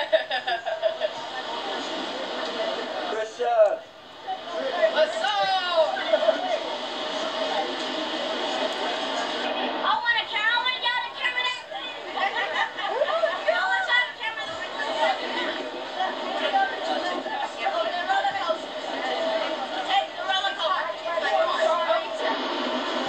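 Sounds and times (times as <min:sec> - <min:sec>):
people talking: 0:00.0 - 0:23.0.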